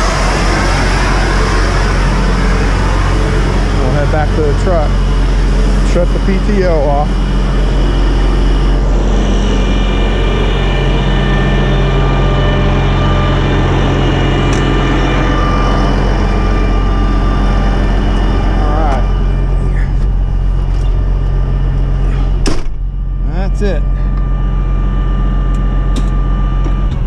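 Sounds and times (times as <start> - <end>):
loud rushing noise: 0.0 - 22.7
diesel truck engine idling: 0.0 - 27.0.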